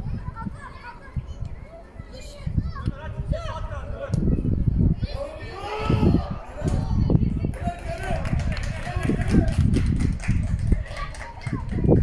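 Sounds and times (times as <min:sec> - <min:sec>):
voices calling out: 0:00.0 - 0:09.7.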